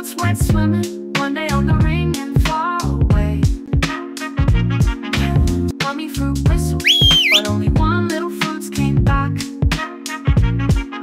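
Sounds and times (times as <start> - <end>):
bouncy children's song music: 0.0 - 11.0
rising whistle: 6.8 - 7.5.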